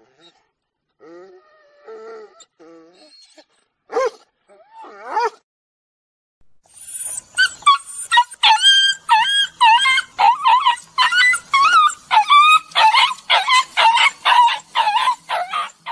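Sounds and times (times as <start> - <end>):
dog yipping and whining: 1.1 - 5.4, 6.7 - 15.9.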